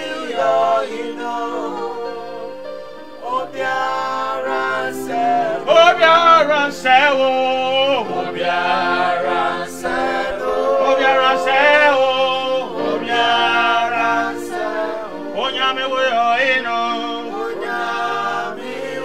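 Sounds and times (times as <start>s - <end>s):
electronic keyboard chords: 0.0s - 19.0s
men singing gospel song: 0.0s - 19.0s.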